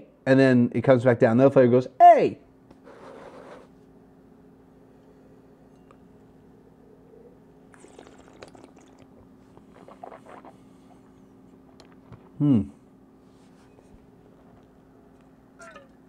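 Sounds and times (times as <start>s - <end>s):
steady low hum: 0.0s - 16.0s
wet slurping and swishing: 7.7s - 11.1s.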